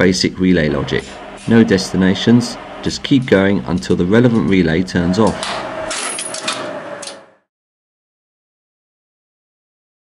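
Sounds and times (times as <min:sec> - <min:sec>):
steady hum and hiss: 0:00.0 - 0:07.3
relays clicking: 0:05.2 - 0:07.3.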